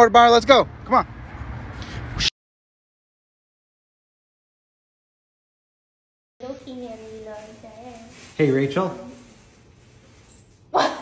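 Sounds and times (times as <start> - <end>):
woman laughing: 10.8 - 11.0.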